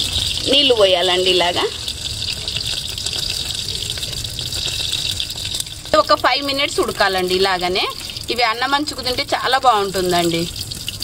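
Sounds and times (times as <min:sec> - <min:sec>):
water pouring onto clay: 0:00.0 - 0:11.0.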